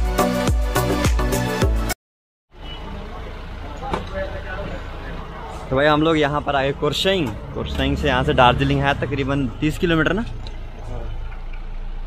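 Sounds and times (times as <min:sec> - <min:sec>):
van engine idling: 0:02.6 - 0:12.0.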